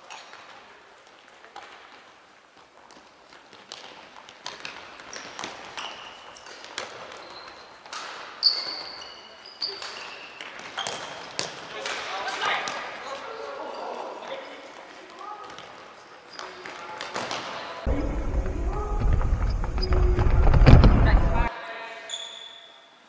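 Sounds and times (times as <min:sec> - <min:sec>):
shoe squeak: 0:05.1 - 0:11.3, 0:22.0 - 0:22.9.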